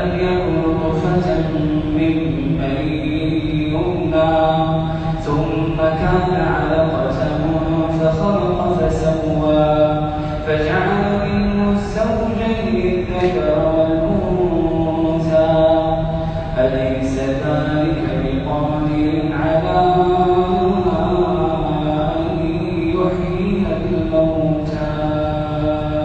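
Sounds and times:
man reciting melodically: 0.0 - 26.0.

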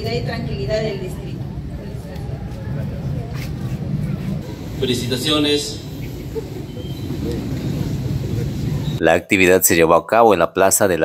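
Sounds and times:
faint indistinct voices: 0.0 - 9.0
low outdoor rumble: 0.0 - 9.0.

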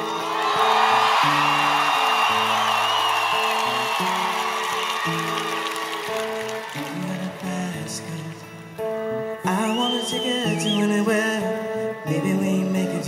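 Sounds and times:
audience cheering and applauding: 0.0 - 8.9
fingerpicked acoustic guitar: 0.0 - 13.0
long high whistle: 0.1 - 5.7, 9.6 - 11.0.

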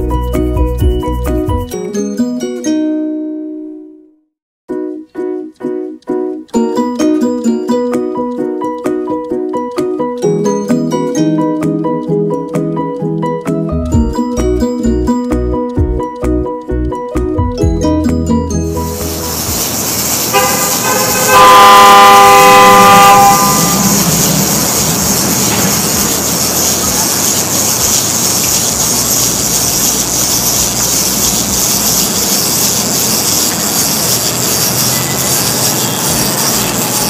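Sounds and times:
city street traffic: 13.9 - 37.0
vehicle horn: 20.2 - 25.0.

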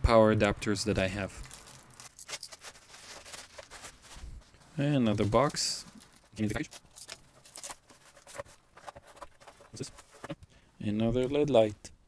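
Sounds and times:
plastic bag crinkling: 1.3 - 10.1.

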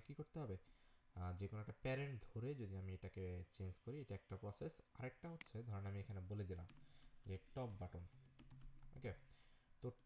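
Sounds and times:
computer keyboard typing: 6.3 - 9.1.

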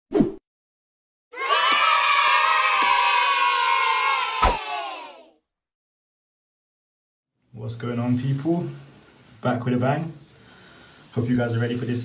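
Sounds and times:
children cheering and shouting: 1.3 - 5.4.

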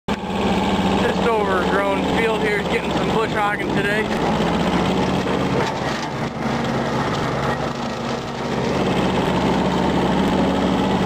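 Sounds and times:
garden tractor engine running: 0.1 - 11.0
man talking: 1.0 - 4.2.

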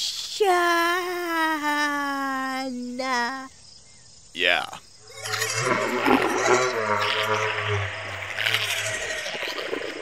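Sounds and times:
low steady drone call: 5.0 - 10.0.

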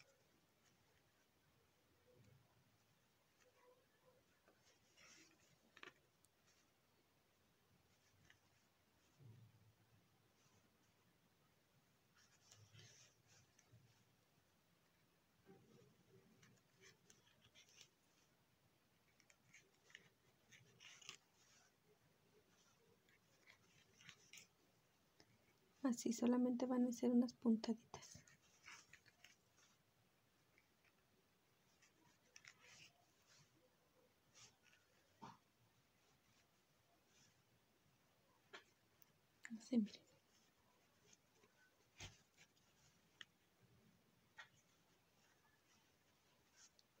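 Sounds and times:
fingers handling fabric rustles: 0.0 - 47.0
needle drawing yarn through fabric: 0.0 - 47.0.

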